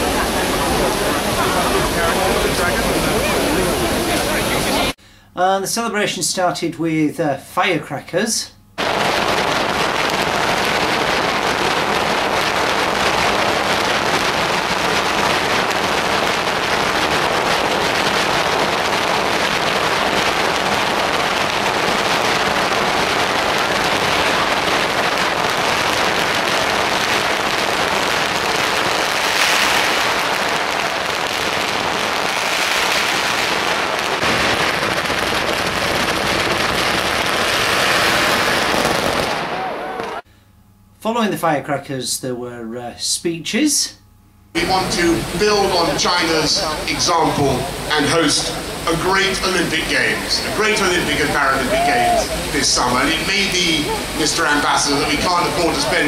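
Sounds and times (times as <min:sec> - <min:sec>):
firecrackers crackling: 0:00.0 - 0:05.0, 0:08.8 - 0:40.3, 0:44.5 - 0:56.0.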